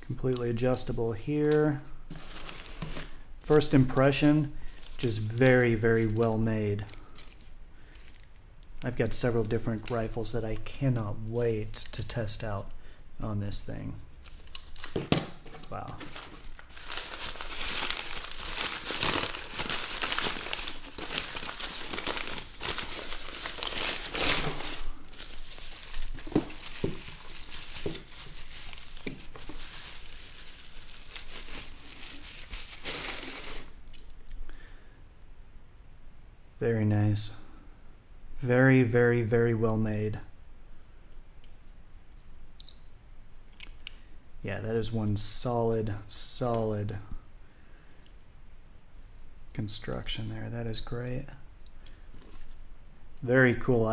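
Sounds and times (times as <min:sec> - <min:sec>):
plastic bag crinkling: 0:02.1 - 0:03.7, 0:04.6 - 0:08.3, 0:14.2 - 0:33.8
packing paper crumpling and rustling: 0:02.1 - 0:08.3, 0:14.2 - 0:33.8.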